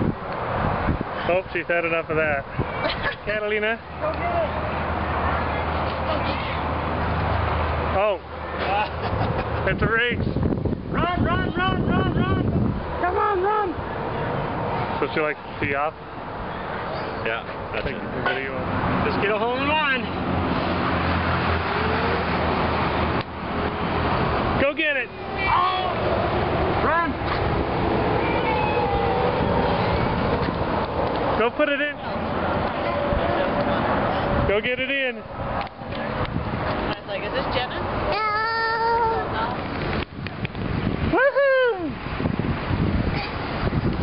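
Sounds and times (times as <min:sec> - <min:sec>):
wind rumble on microphone: 0:00.0 - 0:03.3, 0:09.6 - 0:13.2, 0:32.5 - 0:37.0, 0:39.2 - 0:44.0
traffic rushing: 0:00.0 - 0:44.0
vehicle engine hum: 0:00.0 - 0:44.0
toddler high-pitched vocal sound: 0:38.1 - 0:39.4, 0:43.1 - 0:43.4.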